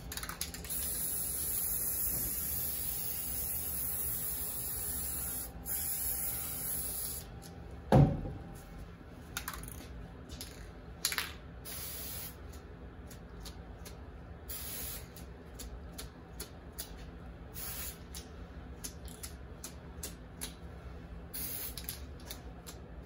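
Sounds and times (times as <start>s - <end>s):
spray paint can hissing: 0.2s - 7.3s, 11.7s - 12.4s, 14.5s - 15.2s, 17.6s - 18.0s, 21.3s - 22.0s
loud thump: 7.9s - 8.5s.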